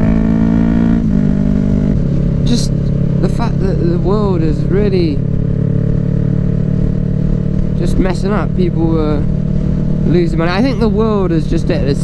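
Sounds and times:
motorcycle engine cruising: 0:00.0 - 0:12.0.

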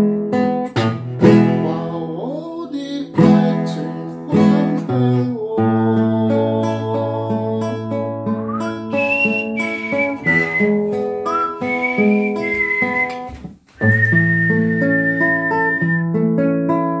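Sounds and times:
fingerpicked classical guitar: 0:00.0 - 0:17.0
man whistling a melody: 0:08.3 - 0:16.2.

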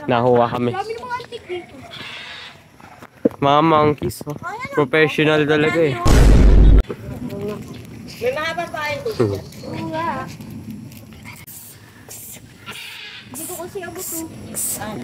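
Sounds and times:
microphone handling rumble: 0:06.1 - 0:06.8
voices calling and shouting: 0:11.3 - 0:15.0.

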